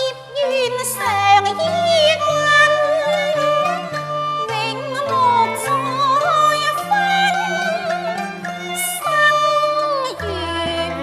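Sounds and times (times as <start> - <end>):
woman singing in a high voice: 0.0 - 3.8, 4.4 - 11.0
instrumental accompaniment: 0.0 - 11.0.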